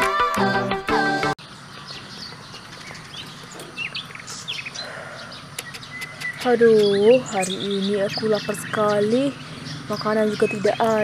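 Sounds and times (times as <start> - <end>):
birds chirping: 1.4 - 11.0
outdoor background noise: 1.4 - 11.0.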